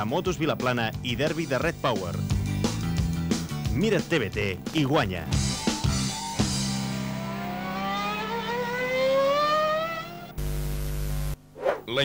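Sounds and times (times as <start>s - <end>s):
scooter engine revving: 6.6s - 10.4s
tv static hiss: 10.3s - 12.0s.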